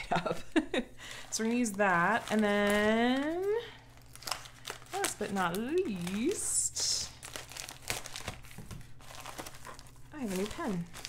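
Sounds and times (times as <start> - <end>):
plastic envelope crinkling: 1.2 - 11.0.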